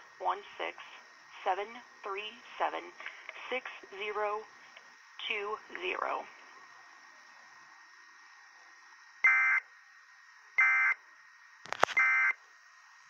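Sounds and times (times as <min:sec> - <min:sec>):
faint steady hiss: 0:00.0 - 0:13.0
sharp click: 0:11.7 - 0:12.0.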